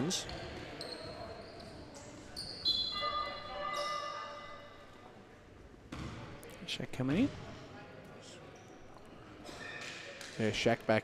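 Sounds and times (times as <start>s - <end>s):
basketball bouncing: 5.9s - 6.2s.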